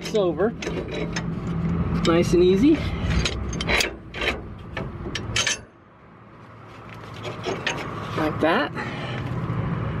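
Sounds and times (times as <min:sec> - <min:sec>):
metal parts clinking and scraping: 0:00.0 - 0:02.1, 0:02.7 - 0:05.8, 0:06.8 - 0:08.2.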